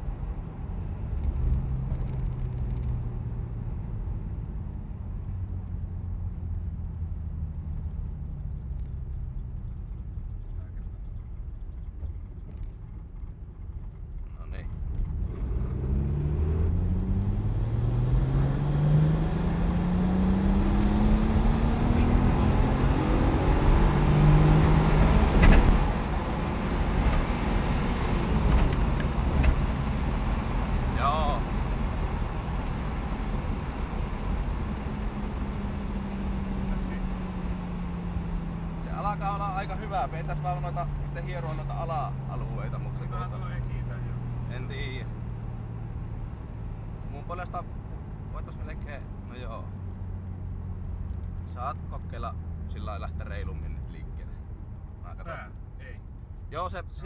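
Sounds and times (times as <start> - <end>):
car engine pulling hard under load: 20.6 - 38.8.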